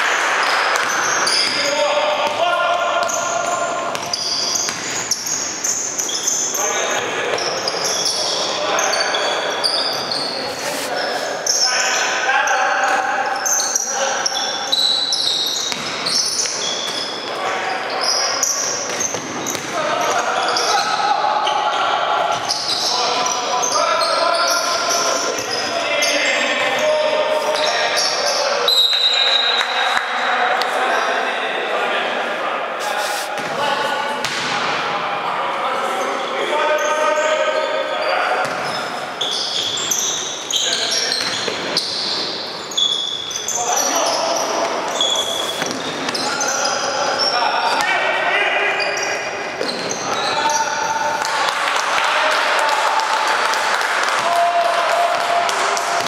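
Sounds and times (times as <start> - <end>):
shoes squeaking: 0.4 - 12.0, 12.9 - 29.5, 36.0 - 51.2.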